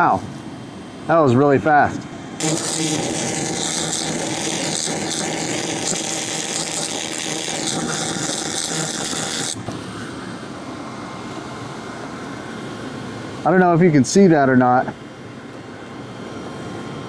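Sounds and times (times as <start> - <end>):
steady machine hum: 0.0 - 17.0
laser cleaner hissing: 2.4 - 10.4.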